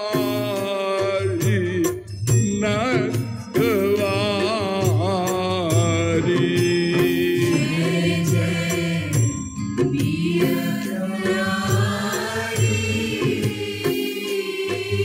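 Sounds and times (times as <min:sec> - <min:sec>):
devotional singing with accompaniment: 0:00.0 - 0:15.0.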